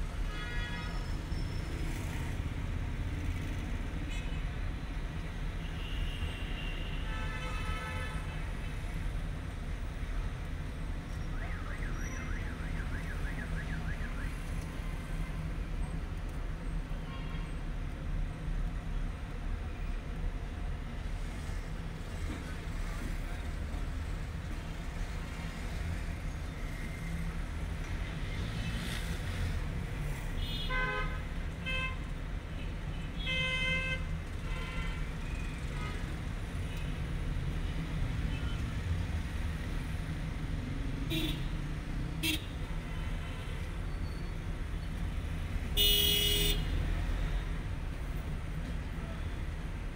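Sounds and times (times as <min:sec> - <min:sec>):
road traffic rumble: 0:00.0 - 0:49.9.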